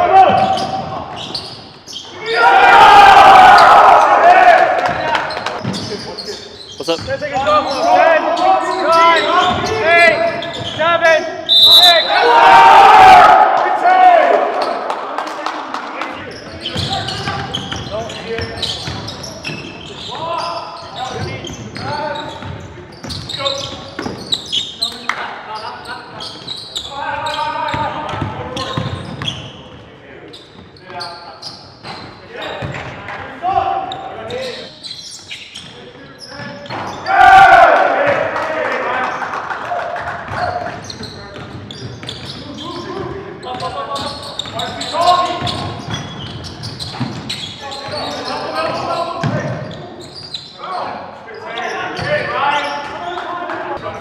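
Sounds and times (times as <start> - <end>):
players' voices: 2.0 - 34.8, 35.4 - 54.0.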